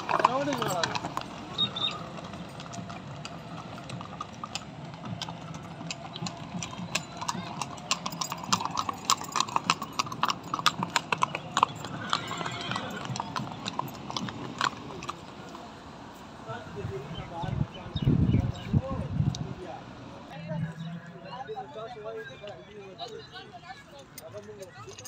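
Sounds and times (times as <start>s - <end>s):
horse hooves clopping on paving: 0.0s - 15.8s, 22.4s - 25.0s
faint voices: 0.0s - 25.0s.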